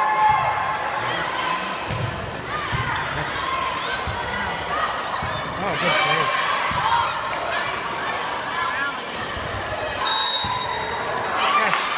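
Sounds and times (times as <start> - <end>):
referee's whistle blast: 10.0 - 11.0.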